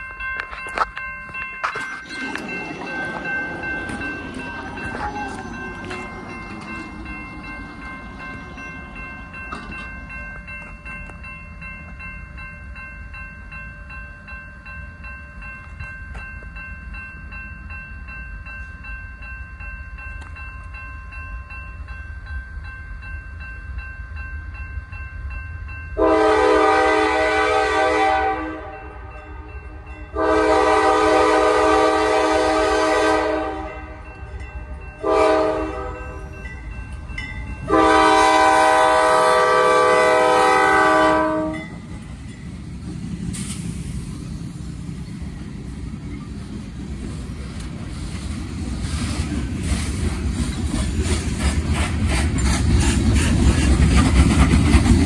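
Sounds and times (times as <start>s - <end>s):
railroad crossing bell ringing: 0.0s - 51.4s
train rumbling through crossing: 0.0s - 55.0s
locomotive air horn: 26.0s - 29.4s, 30.1s - 33.8s, 35.0s - 36.2s, 37.7s - 41.6s.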